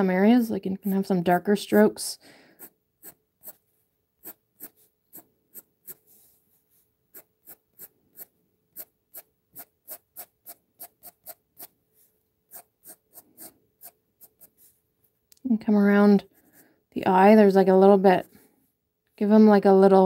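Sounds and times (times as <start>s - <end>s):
pencil strokes on paper: 2.6s - 14.9s.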